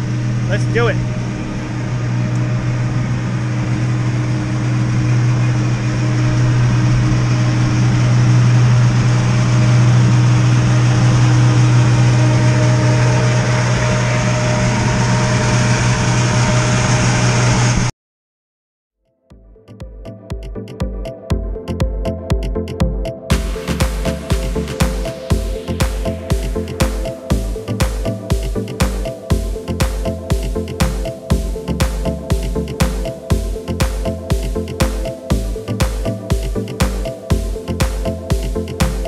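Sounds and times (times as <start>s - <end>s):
aircraft engines droning: 0.0s - 17.9s, 23.3s - 39.0s
high whine: 0.0s - 17.9s, 19.7s - 39.0s.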